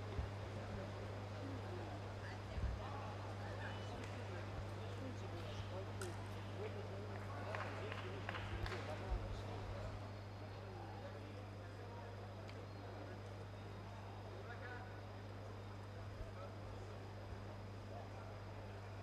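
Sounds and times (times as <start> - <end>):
indistinct voices and chatter: 0.0 - 19.0
low electrical hum: 0.0 - 19.0.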